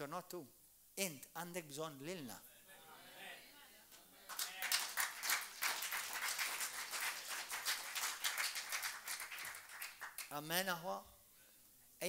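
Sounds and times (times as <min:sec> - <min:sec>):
small group clapping: 0:03.9 - 0:10.4.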